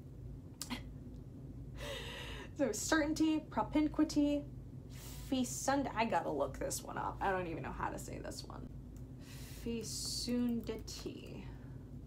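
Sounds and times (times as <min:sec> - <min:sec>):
steady low hum: 0:00.0 - 0:12.0
woman speaking softly: 0:02.6 - 0:04.5, 0:09.6 - 0:11.6.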